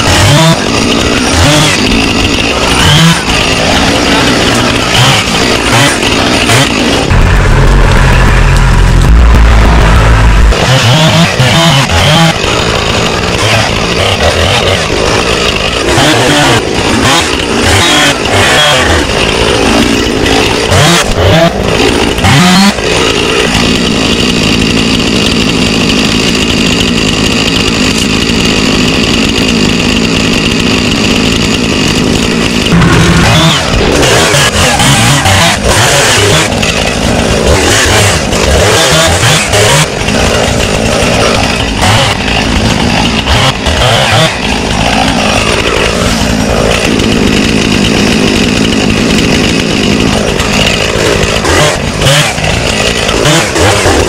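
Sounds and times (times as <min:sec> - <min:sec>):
chainsaw running and revving: 0:00.0 - 0:54.0.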